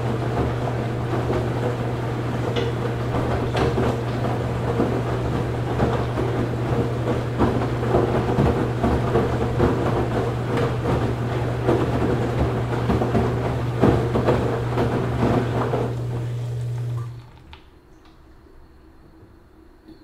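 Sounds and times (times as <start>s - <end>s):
drum knocks and thuds: 0.0s - 16.0s
washing machine hum: 0.0s - 19.9s.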